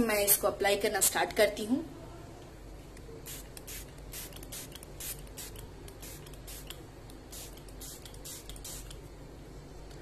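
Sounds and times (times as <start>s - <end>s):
spray bottle hissing: 3.3s - 9.0s.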